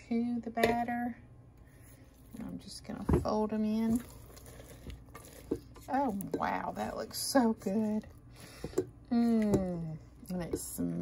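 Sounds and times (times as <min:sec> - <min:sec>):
spatula stirring and scraping batter: 0:01.6 - 0:11.0.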